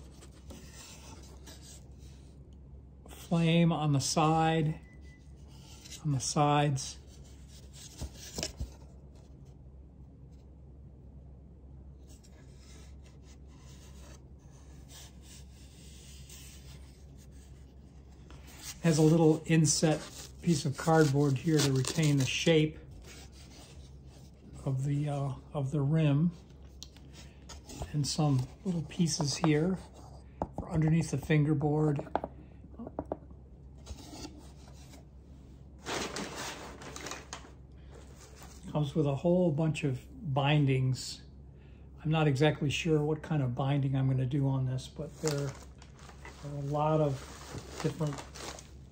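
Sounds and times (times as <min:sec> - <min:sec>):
wood and cardboard scraping: 0:00.0 - 0:02.2
low steady hum: 0:00.0 - 0:48.9
packing material rustling: 0:18.2 - 0:23.9, 0:35.8 - 0:38.7, 0:45.1 - 0:48.9.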